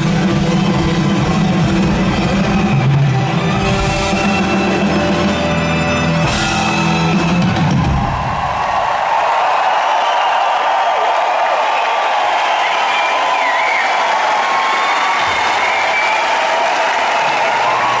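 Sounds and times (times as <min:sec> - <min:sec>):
crowd cheering and clapping: 0:00.0 - 0:18.0
whistling: 0:09.9 - 0:10.6, 0:11.7 - 0:16.6.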